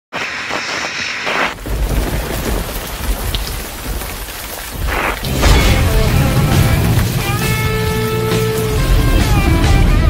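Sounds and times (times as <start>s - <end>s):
rain hissing: 0.1s - 10.0s
low thunder rumble: 1.6s - 8.0s.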